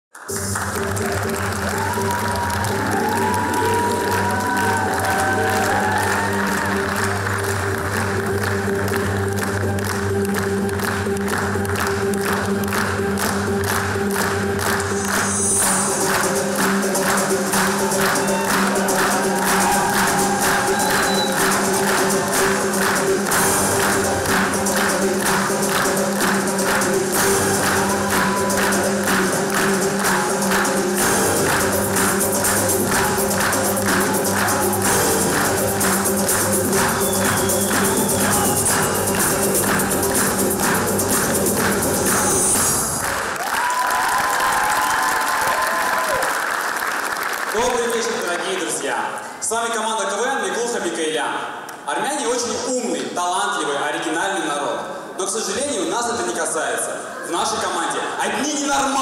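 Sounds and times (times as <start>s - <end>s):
dance music: 0.1s - 46.2s.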